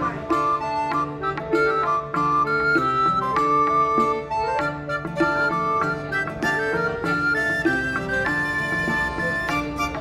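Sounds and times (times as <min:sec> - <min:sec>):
flute-like melody: 0:00.0 - 0:10.0
plucked strings: 0:00.0 - 0:10.0.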